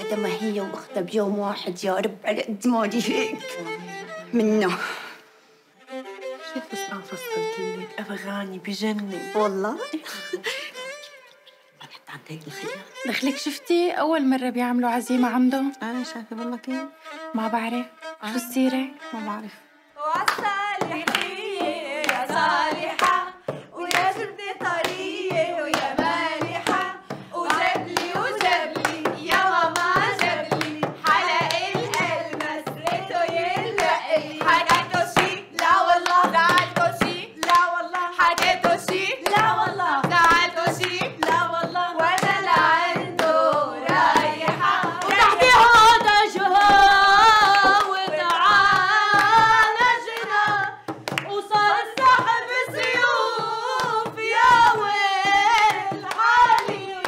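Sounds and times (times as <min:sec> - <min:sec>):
women singing together: 0:00.0 - 0:05.1, 0:18.4 - 0:57.0
hand clapping: 0:20.2 - 0:57.0
frame drum beating: 0:20.8 - 0:57.0.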